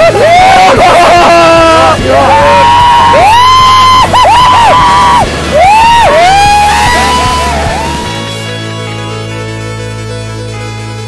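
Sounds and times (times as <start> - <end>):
people whooping and yelling: 0.0 - 8.6.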